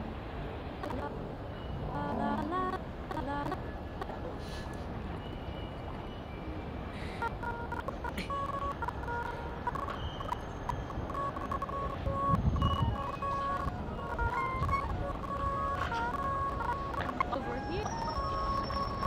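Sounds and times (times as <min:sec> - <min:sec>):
short beeping tones: 0:07.2 - 0:19.0.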